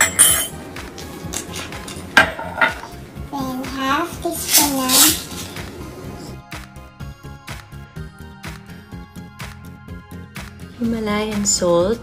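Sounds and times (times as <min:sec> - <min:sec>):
glassware clinking: 0:00.0 - 0:00.6, 0:01.4 - 0:03.0
background music: 0:00.0 - 0:12.0.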